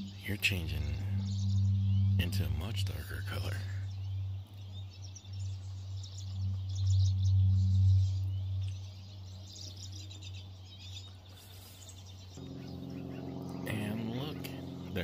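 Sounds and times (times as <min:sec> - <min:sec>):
small bird chirping: 0:00.0 - 0:15.0
steady low hum: 0:00.0 - 0:15.0.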